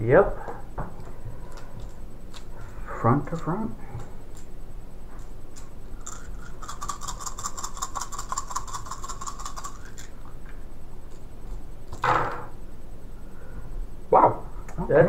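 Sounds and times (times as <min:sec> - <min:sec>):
dice rattling in a hand: 0:05.6 - 0:10.1.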